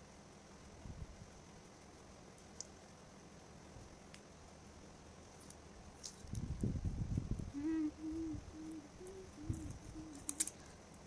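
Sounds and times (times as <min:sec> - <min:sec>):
tape crackling: 0:09.1 - 0:11.0.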